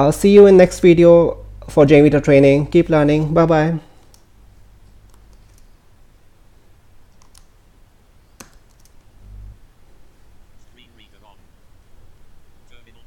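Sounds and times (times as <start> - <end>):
faint background hiss: 0.0 - 13.0.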